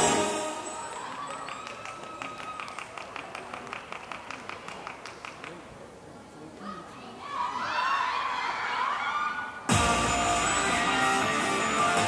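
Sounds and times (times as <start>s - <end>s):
audience clapping: 0.8s - 5.7s
electronic pop backing track: 9.7s - 12.0s.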